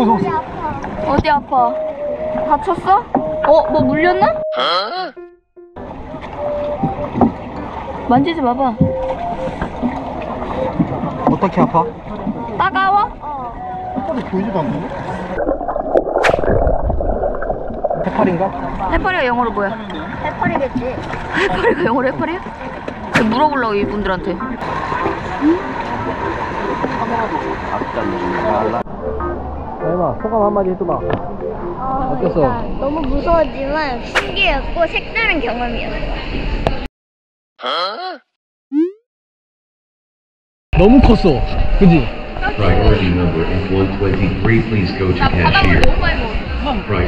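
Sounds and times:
wind and water noise: 0.0s - 4.6s, 5.8s - 36.9s, 40.8s - 47.0s
voices: 0.0s - 5.2s, 18.1s - 36.2s, 40.8s - 47.0s
light background music: 1.0s - 7.6s
boat rushing on sea: 5.8s - 15.6s, 18.0s - 36.9s, 40.8s - 47.0s
low hum: 5.8s - 34.8s, 40.8s - 47.0s.

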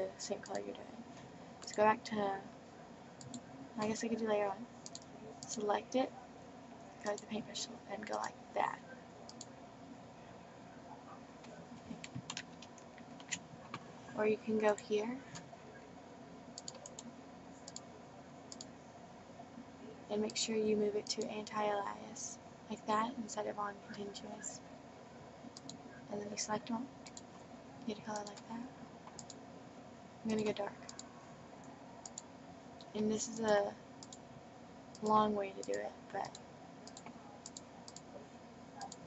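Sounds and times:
low electrical hum: 0.0s - 39.0s
computer mouse clicks: 3.2s - 3.9s, 4.8s - 5.6s, 9.3s - 9.5s, 11.4s - 13.8s, 16.6s - 17.9s, 18.5s - 18.7s, 25.5s - 25.8s, 27.0s - 27.4s, 28.1s - 29.4s, 30.4s - 31.1s, 32.0s - 34.2s, 34.9s - 38.1s.

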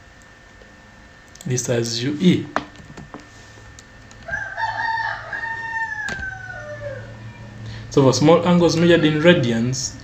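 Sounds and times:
long steady animal call: 4.4s - 7.6s.

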